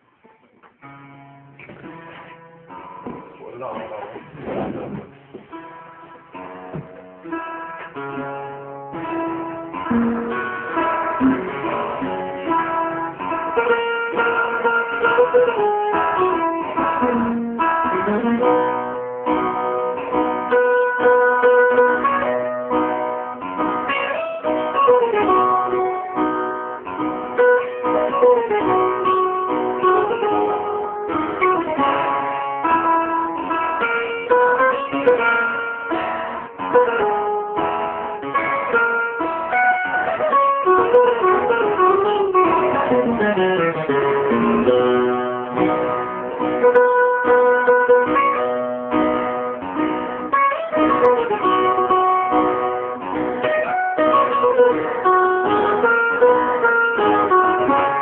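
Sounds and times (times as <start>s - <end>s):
picked guitar melody: 0.0s - 58.0s
strummed guitar: 0.0s - 58.0s.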